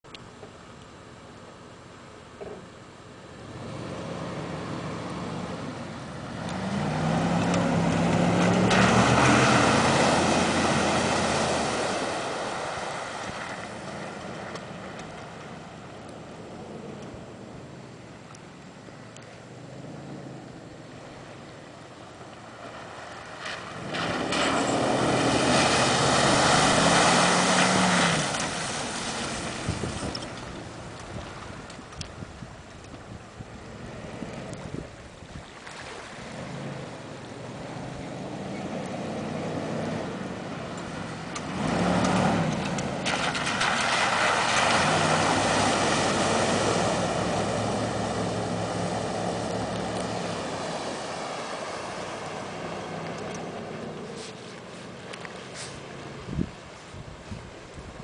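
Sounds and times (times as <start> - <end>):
engine revving: 3.4 - 12.8, 23.7 - 29.2, 36.3 - 54.4
water splashing: 3.6 - 16.6, 20.8 - 32.9, 33.7 - 56.9.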